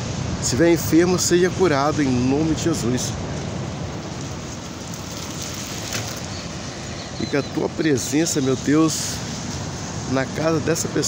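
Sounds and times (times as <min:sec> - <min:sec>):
outdoor rushing hiss: 0:00.0 - 0:11.0.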